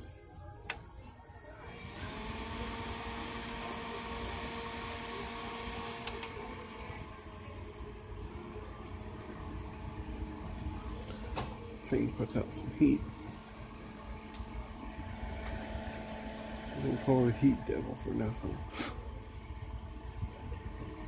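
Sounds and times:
heater fan whirring: 0.0s - 21.0s
light electrical hum: 0.0s - 21.0s
heater knob click: 6.0s - 6.4s.

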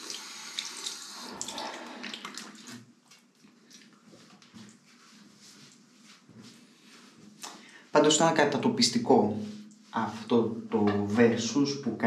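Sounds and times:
tap water running into sink: 0.0s - 2.8s.

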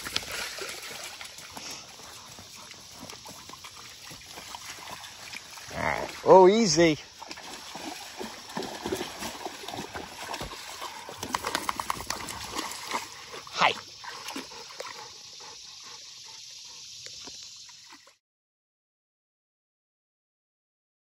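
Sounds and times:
dog splashing through water: 0.0s - 15.2s
water trickling: 0.0s - 18.1s.

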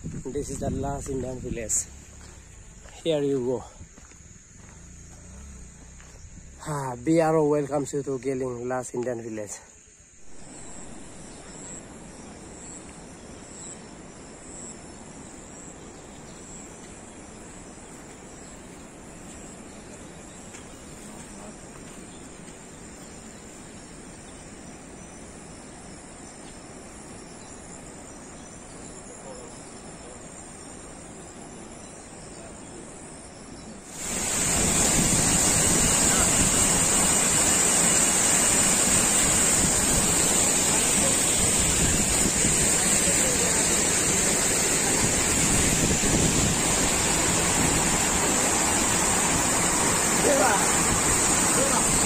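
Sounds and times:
high insect sound: 0.0s - 52.0s
waterfall and stream rushing: 33.8s - 52.0s.

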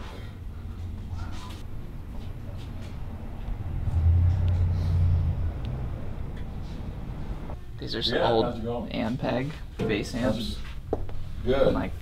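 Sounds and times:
steady low background noise: 0.2s - 9.8s
low rumble: 1.6s - 7.6s.

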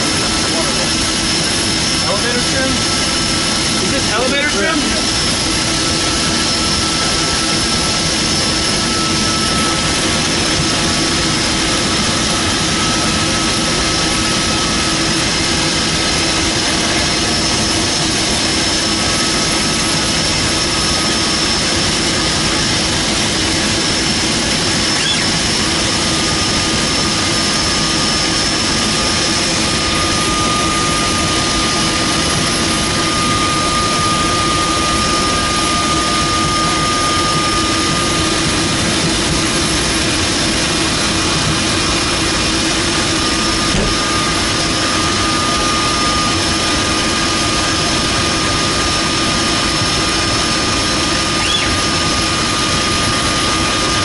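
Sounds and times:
high whine: 0.0s - 54.0s
plane engine and propeller: 0.0s - 54.0s.

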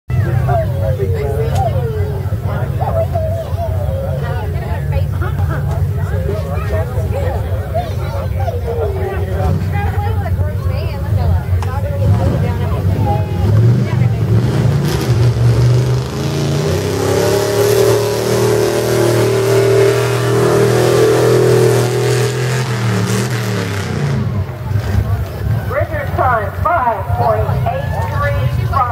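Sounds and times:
truck engine revving: 0.1s - 28.9s.

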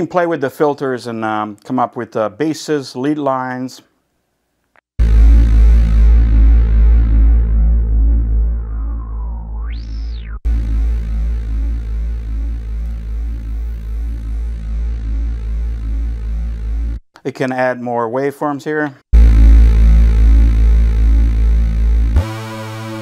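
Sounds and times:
synthesizer bass with filter sweep: 5.0s - 17.0s, 19.2s - 23.0s.

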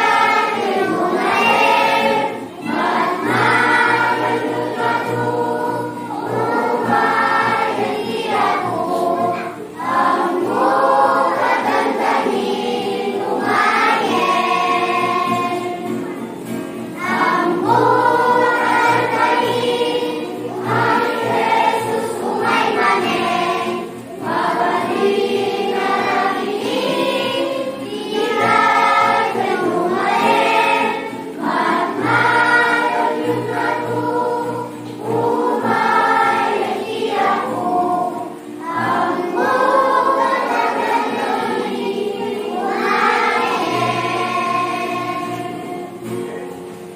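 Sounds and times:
children's choir singing: 0.0s - 46.9s.

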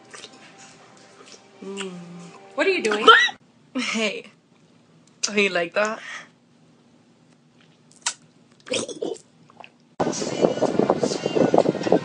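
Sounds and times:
mouth smack: 7.9s - 8.9s.

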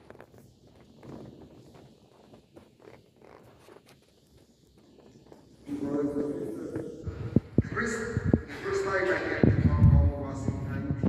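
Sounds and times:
people shifting in wooden pews: 0.0s - 11.0s.

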